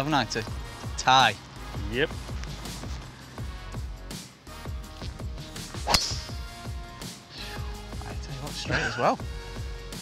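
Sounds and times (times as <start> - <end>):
background music with beat: 0.0 - 10.0
golf ball struck by driver: 5.8 - 6.5
short laugh: 8.7 - 9.2.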